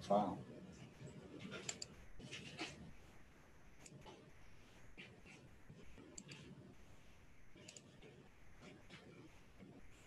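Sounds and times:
computer mouse double-clicks: 7.6s - 7.9s.

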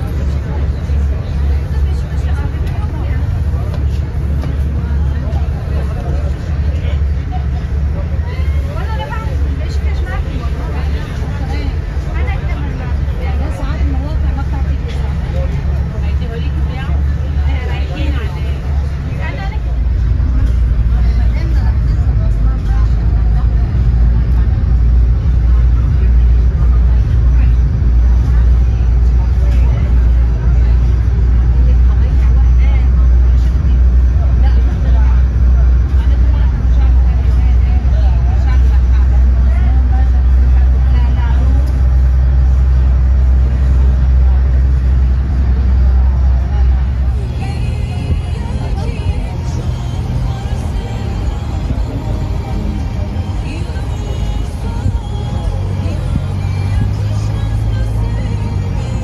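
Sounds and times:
ferry engine rumble: 0.0s - 59.0s
passengers talking: 0.0s - 59.0s.

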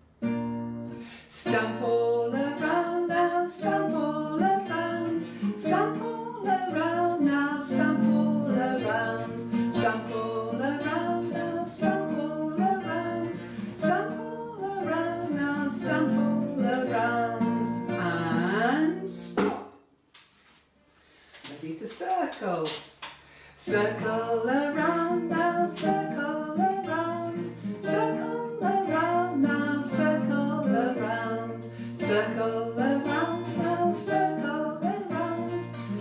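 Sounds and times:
strummed acoustic guitar: 0.0s - 19.7s, 23.6s - 36.0s
woman singing: 1.2s - 19.6s, 23.6s - 36.0s.

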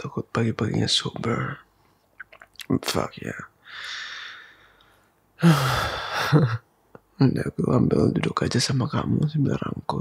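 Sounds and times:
man sighing: 5.4s - 6.6s.

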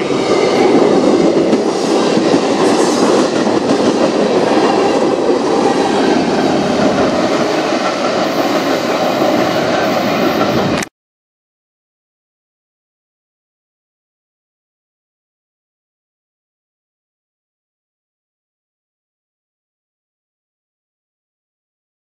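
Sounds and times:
train wheels rolling on rail: 0.0s - 10.9s.

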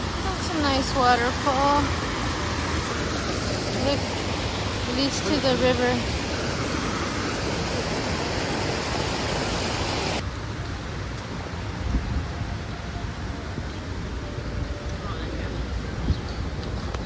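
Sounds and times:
waterfall splashing over stones: 0.0s - 10.6s.

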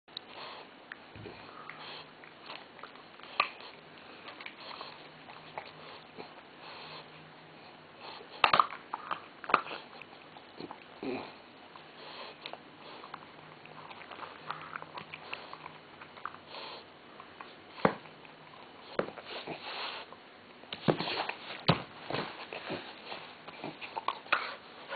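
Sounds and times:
dog gnawing a chew stick: 0.1s - 20.1s, 20.8s - 24.9s
dog snuffling: 3.2s - 8.5s, 14.1s - 18.1s, 18.8s - 20.1s.

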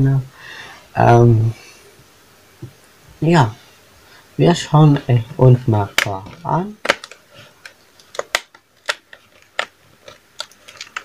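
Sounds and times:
hands handling cardboard clicks: 5.9s - 11.0s.

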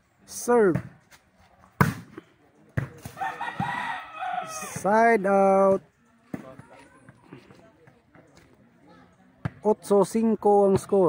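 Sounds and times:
volleyball slaps: 1.8s - 2.2s.

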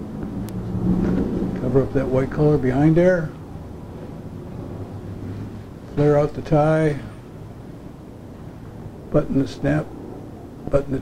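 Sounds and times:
faint background noise: 0.0s - 11.0s
steady low hum: 0.0s - 11.0s.

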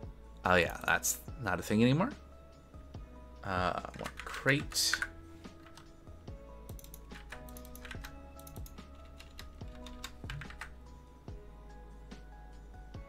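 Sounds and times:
quiet background music: 0.0s - 13.0s
typing on computer keyboard: 3.9s - 5.8s, 6.7s - 10.7s.

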